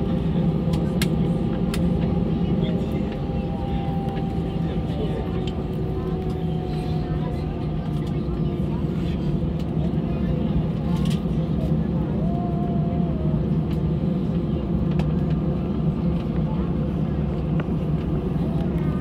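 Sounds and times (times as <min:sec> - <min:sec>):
airplane cabin engine rumble: 0:00.0 - 0:19.0
faint engine whining tones: 0:00.0 - 0:19.0.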